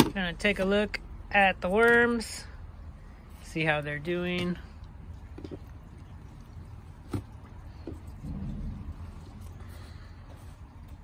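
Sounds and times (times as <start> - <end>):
low rumble: 7.5 - 11.0.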